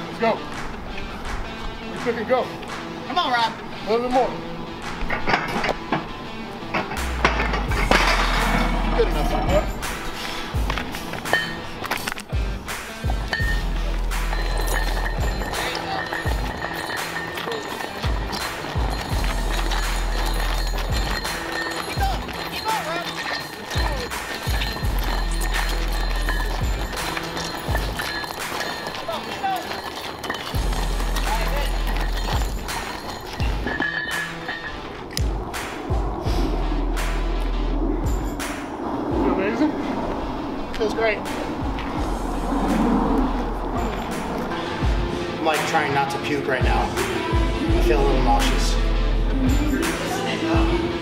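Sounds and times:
background music: 0:00.0 - 0:51.0
chain scraping on asphalt: 0:06.7 - 0:47.0.

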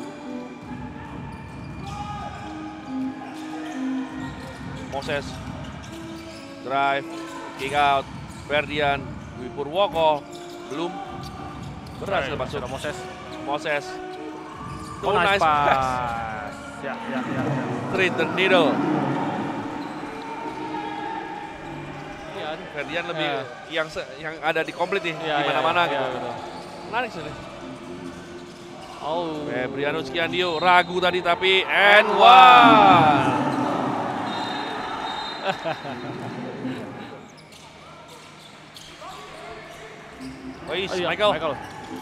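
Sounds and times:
crowd and court noise: 0:00.0 - 0:42.0
commentator calling out excitedly: 0:31.8 - 0:33.6.

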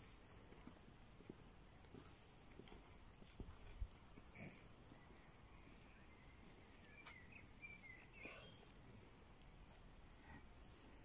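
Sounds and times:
footsteps on stone paving: 0:00.0 - 0:05.2.

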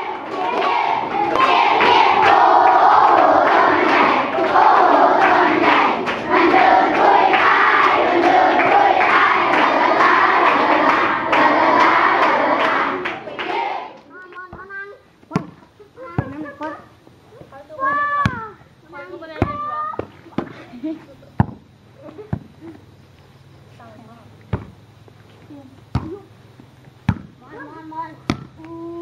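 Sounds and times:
children chanting: 0:00.0 - 0:14.1
hand claps: 0:00.2 - 0:14.1.

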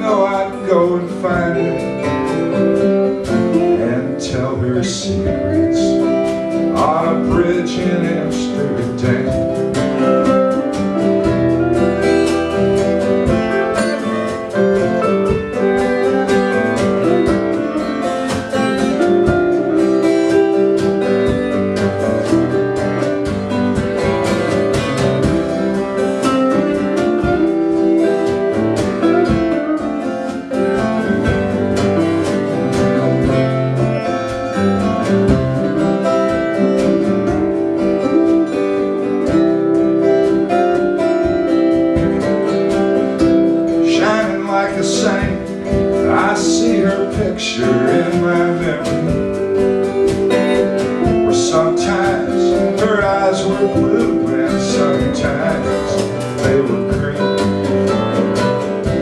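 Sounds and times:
drum kit beat: 0:00.0 - 0:59.0
electric lead guitar: 0:00.0 - 0:59.0
strummed acoustic guitar: 0:00.0 - 0:59.0.

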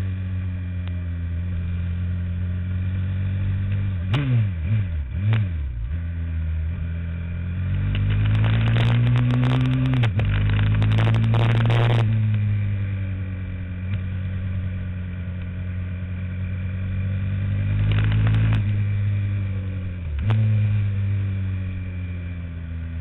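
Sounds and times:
kart engine at speed: 0:00.0 - 0:23.0
rough crackling noise: 0:06.8 - 0:22.0.

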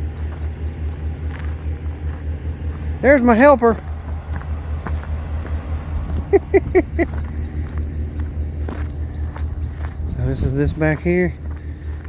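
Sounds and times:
pickup truck engine idling: 0:00.0 - 0:12.0.

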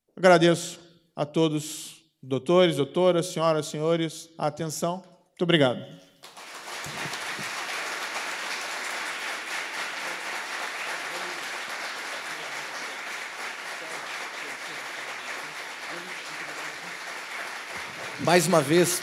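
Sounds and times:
audience applauding: 0:06.2 - 0:19.0.

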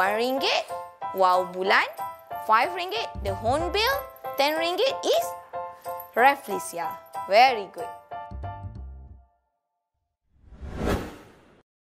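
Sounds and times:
rushing whoosh: 0:10.4 - 0:11.6.

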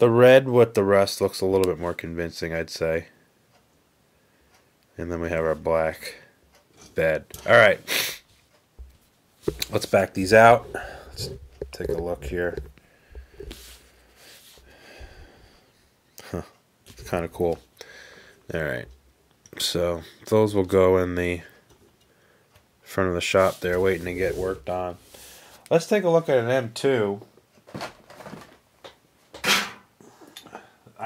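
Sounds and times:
faint nasal breathing: 0:10.4 - 0:11.6, 0:12.6 - 0:16.3, 0:17.8 - 0:18.5, 0:25.0 - 0:25.7.

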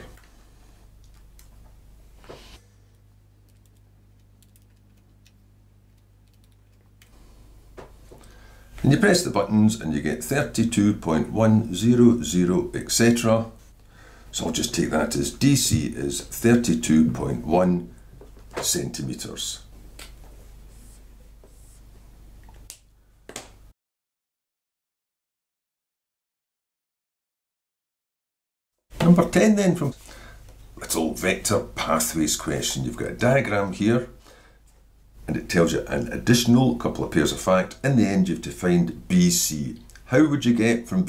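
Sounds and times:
small sharp clicks: 0:03.4 - 0:07.1.

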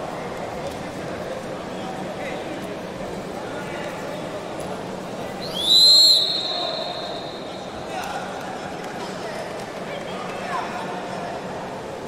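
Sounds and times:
referee's whistle: 0:05.4 - 0:07.5.

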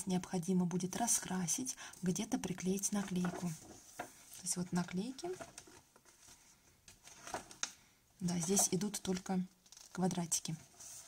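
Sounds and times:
crisp paper rustles: 0:02.8 - 0:11.0
page turning: 0:03.0 - 0:11.0.

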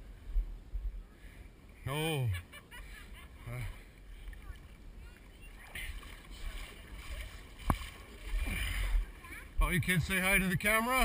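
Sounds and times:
faint distant voices: 0:00.7 - 0:11.0.

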